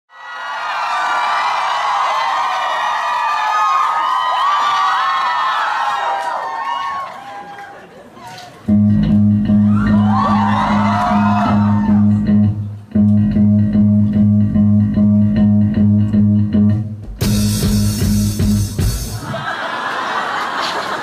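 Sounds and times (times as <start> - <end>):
electric and bass guitar riff: 8.7 - 19.2
drums with cymbals: 17.1 - 19.3.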